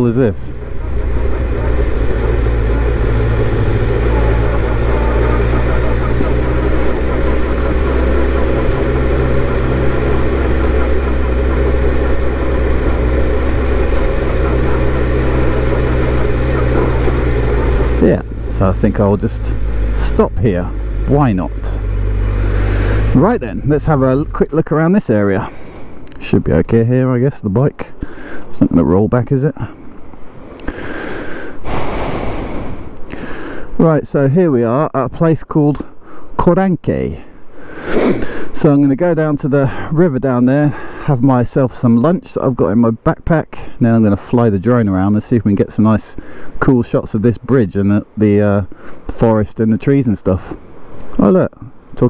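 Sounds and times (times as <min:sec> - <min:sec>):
motorcycle engine running at low revs: 0:00.0 - 0:25.0
heavy breath out: 0:22.3 - 0:23.1, 0:30.6 - 0:33.8.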